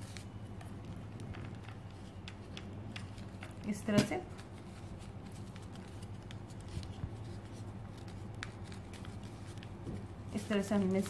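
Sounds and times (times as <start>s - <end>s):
paper rustling and crinkling: 0.0s - 11.0s
steady low hum: 0.0s - 11.0s.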